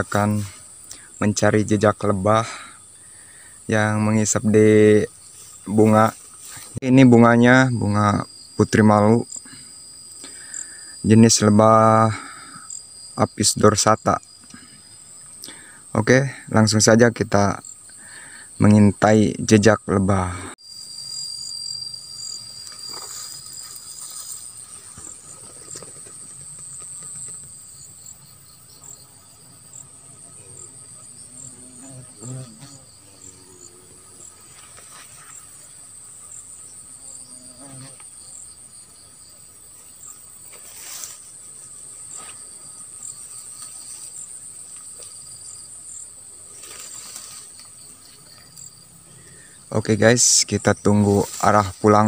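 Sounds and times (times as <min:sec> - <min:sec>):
insects chirring: 0:00.0 - 0:52.0.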